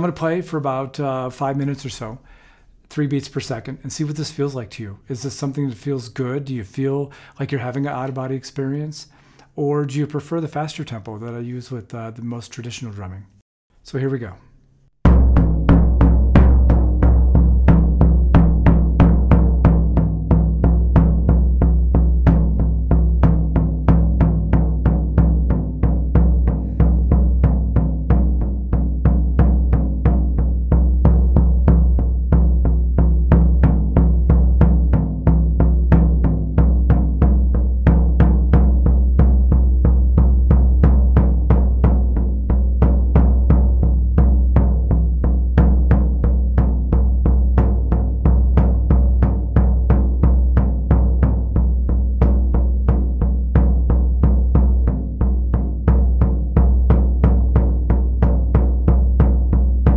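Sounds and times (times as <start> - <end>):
floor tom struck with mallet: 15.0 - 59.9.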